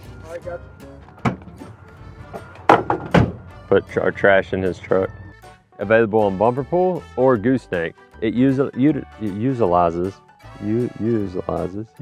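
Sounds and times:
light background music: 0.0s - 12.0s
knocks on truck tailgate: 1.2s - 1.6s, 2.7s - 3.5s.

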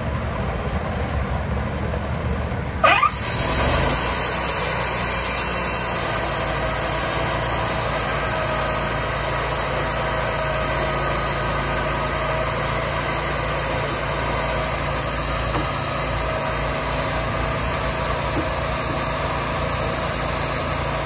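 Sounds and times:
sawmill engine running: 0.0s - 21.0s.

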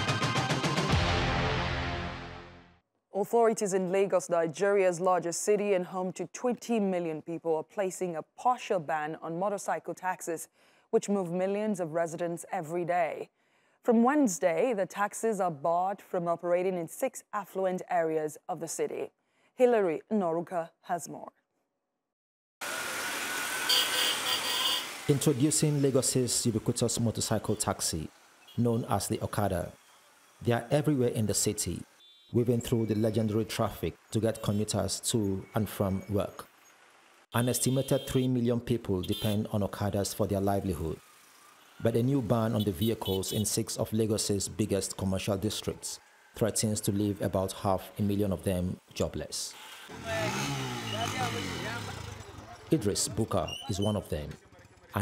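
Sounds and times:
small motorcycle engine running: 22.6s - 37.2s, 39.1s - 47.1s, 49.5s - 55.0s
street traffic: 22.7s - 55.0s.

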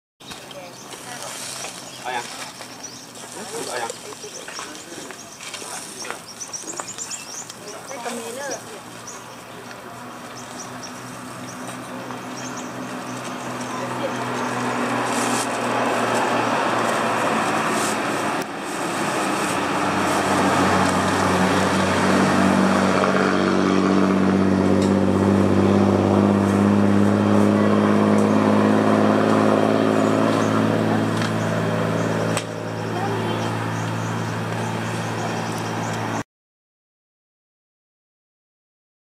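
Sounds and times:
engine humming: 0.2s - 36.2s
outdoor background noise: 0.2s - 36.2s.

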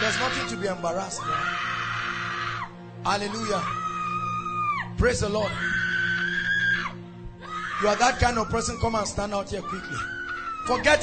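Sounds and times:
person screaming: 0.0s - 11.0s.

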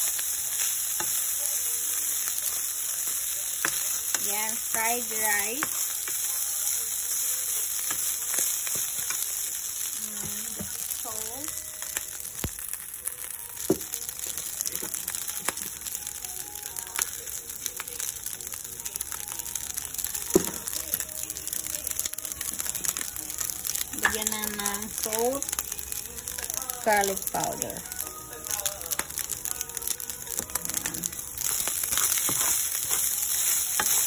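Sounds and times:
rice sizzling in a pan: 0.0s - 34.0s.

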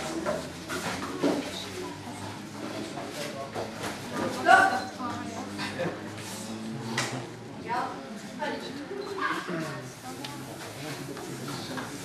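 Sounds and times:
voices talking in a hall: 0.0s - 12.0s.

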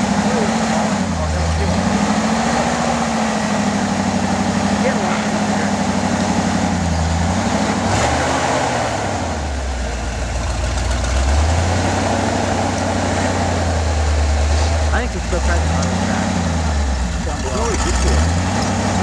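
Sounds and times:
pickup truck engine at low speed: 0.0s - 19.0s.

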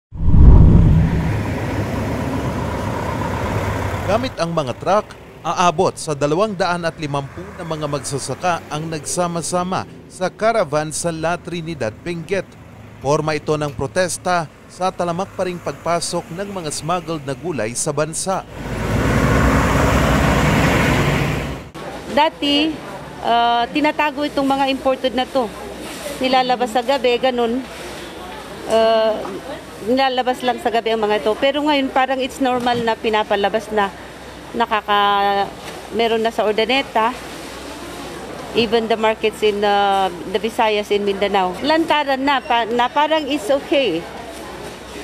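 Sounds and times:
road noise: 0.0s - 45.0s
truck diesel engines running: 1.1s - 23.2s.

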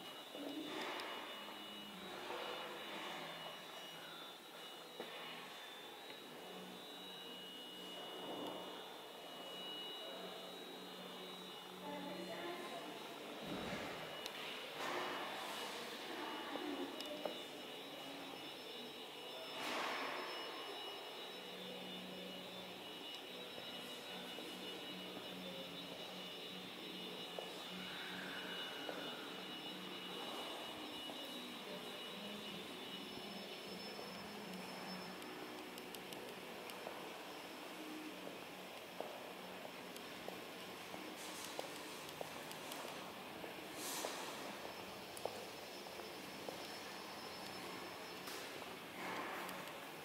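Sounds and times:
faint high steady tones: 0.0s - 50.0s
indoor hall background hum: 0.0s - 50.0s.

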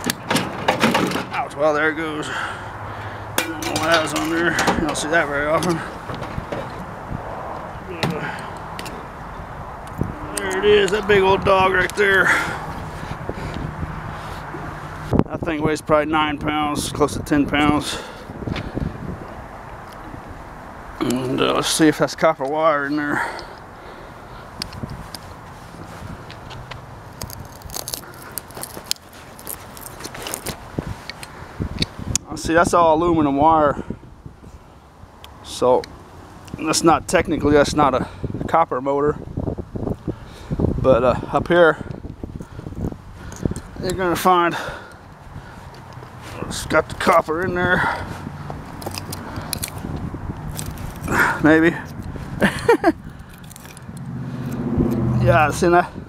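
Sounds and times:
vehicle engine hum: 0.0s - 38.5s, 39.2s - 56.0s
pliers tearing paper and tape: 27.1s - 31.2s, 48.8s - 51.2s, 53.2s - 55.0s
small metal clicks: 48.8s - 49.8s, 53.1s - 55.0s.

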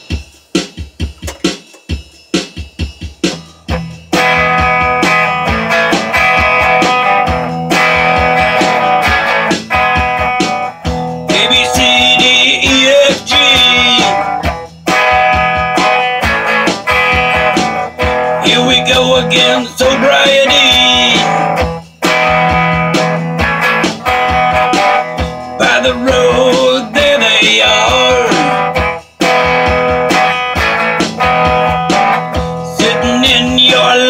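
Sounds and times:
drum machine beat: 0.0s - 34.0s
rock band backing: 0.0s - 34.0s
strummed electric guitar chords: 0.0s - 34.0s
high wavering lead guitar line: 3.2s - 34.0s.

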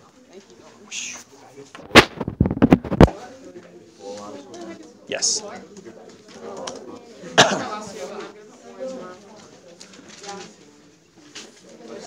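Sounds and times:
murmur of students talking: 0.0s - 12.0s
loud cough: 7.4s - 7.8s.

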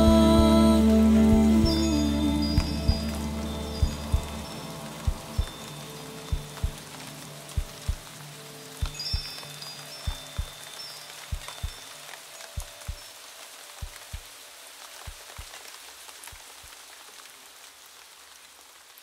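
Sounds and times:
held musical drone: 0.0s - 9.8s
rain falling: 0.0s - 19.0s.

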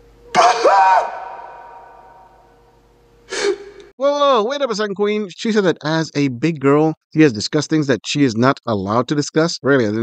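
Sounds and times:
man's anguished cry with echo: 0.3s - 2.3s
sharp sobbing breath: 3.3s - 3.9s.

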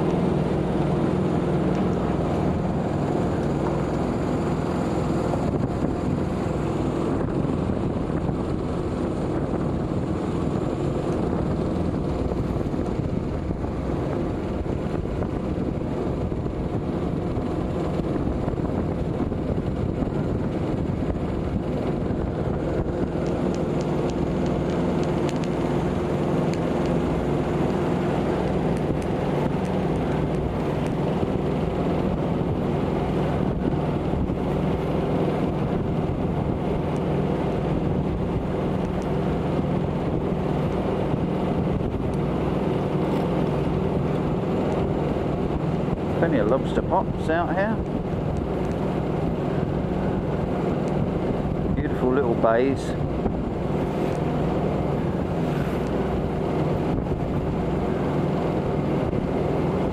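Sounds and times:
boat engine droning: 0.0s - 59.9s
wind buffeting microphone: 0.0s - 59.9s.

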